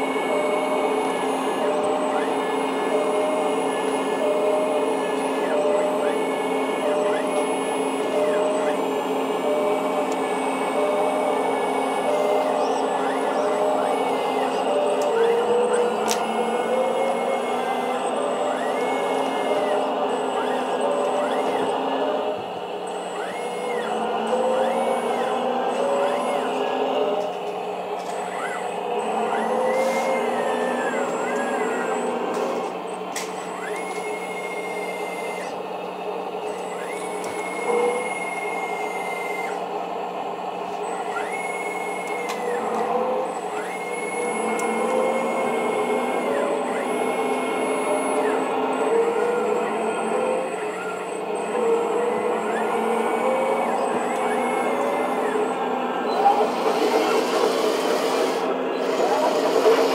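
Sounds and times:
hydraulic pump whine: 0.0s - 59.9s
steady motor hum: 0.0s - 59.9s.

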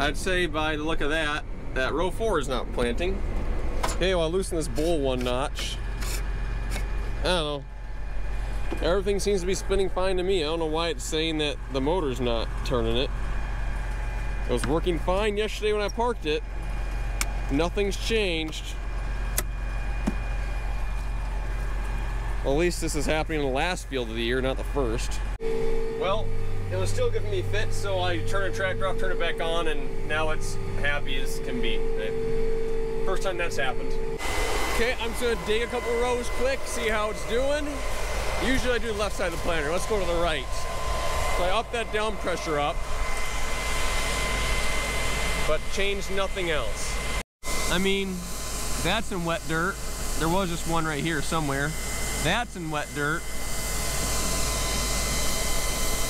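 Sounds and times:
tractor engine humming: 0.0s - 47.2s
high whine: 0.0s - 56.0s
dull thump: 20.0s - 20.2s.

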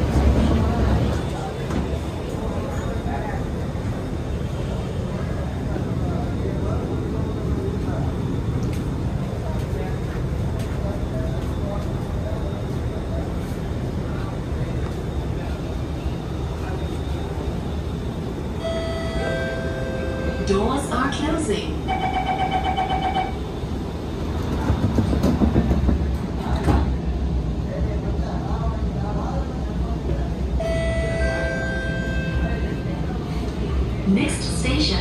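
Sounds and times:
faint voices: 0.0s - 35.0s
metro car low hum: 0.0s - 35.0s.

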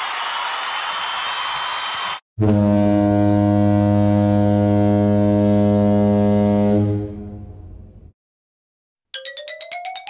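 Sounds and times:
deep horn blast: 2.4s - 8.1s.

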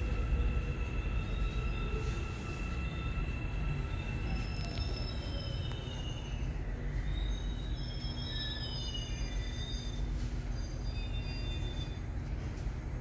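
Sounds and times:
faint falling whine: 0.0s - 13.0s
thin steady high tones: 0.0s - 13.0s
train low rumble: 0.0s - 13.0s.

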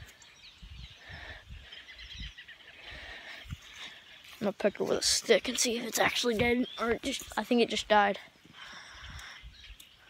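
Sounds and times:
faint bird chirps: 0.0s - 4.6s, 5.4s - 10.0s.

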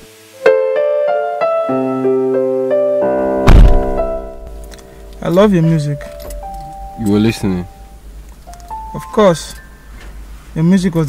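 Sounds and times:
piano music: 0.0s - 10.0s
car door shutting: 3.5s - 4.2s.

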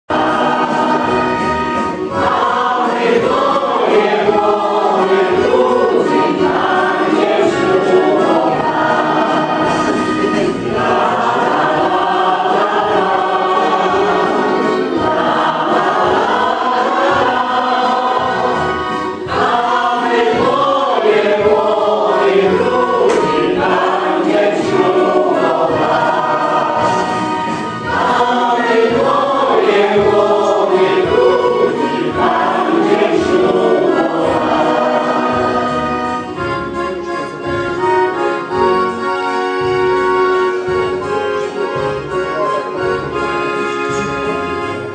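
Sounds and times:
choir singing: 0.1s - 44.9s.

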